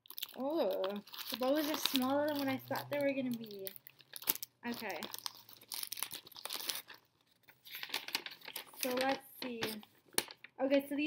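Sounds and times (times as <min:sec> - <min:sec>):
paper packaging crinkling: 0:00.0 - 0:10.6.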